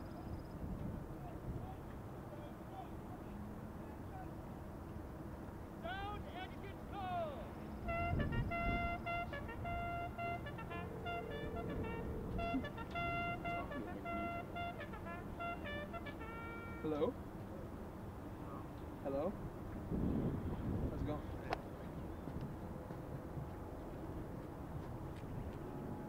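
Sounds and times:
person shouting commands: 5.8s - 7.5s
bugle call: 5.8s - 17.2s.

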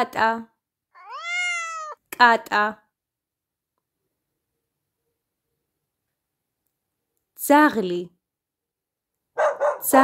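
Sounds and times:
cat meowing: 1.0s - 2.0s.

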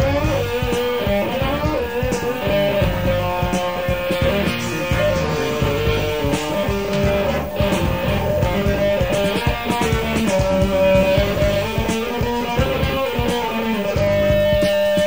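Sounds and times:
bass guitar: 0.0s - 15.0s
drums: 0.0s - 15.0s
electric lead guitar bending notes: 0.0s - 15.0s.

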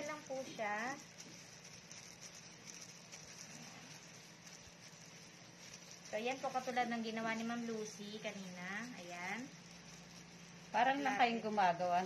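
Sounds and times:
plastic gloves crinkling: 0.0s - 12.0s.

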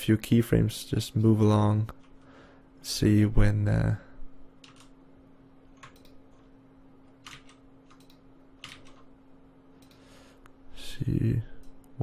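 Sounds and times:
faint steady hum: 0.0s - 12.0s
keyboard and mouse clicks: 4.6s - 4.9s, 5.8s - 6.5s, 7.2s - 9.1s.

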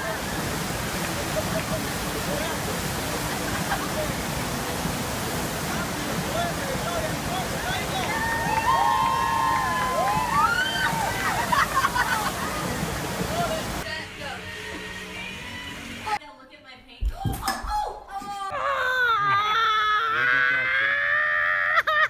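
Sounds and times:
rushing water: 0.0s - 14.0s
voices crying out: 6.2s - 13.8s.

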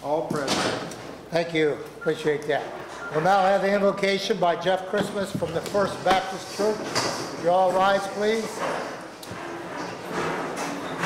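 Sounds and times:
chairs scraping and creaking: 2.5s - 11.0s.

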